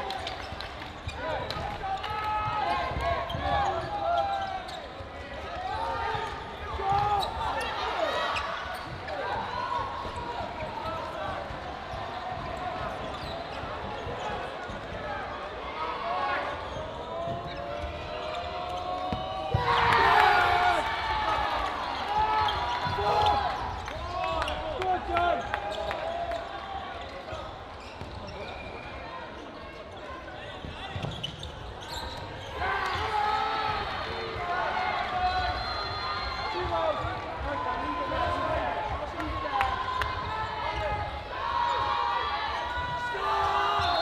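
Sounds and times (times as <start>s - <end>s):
dodgeballs thudding: 17.2s - 20.5s
players shouting: 17.5s - 26.5s, 32.4s - 44.0s.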